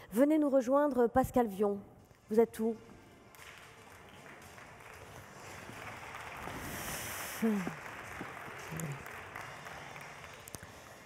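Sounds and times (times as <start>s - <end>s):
audience applause: 3.4s - 11.0s.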